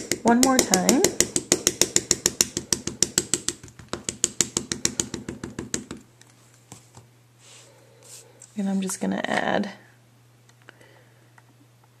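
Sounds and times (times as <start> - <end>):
ink pad tapping rubber stamp: 0.0 - 6.0.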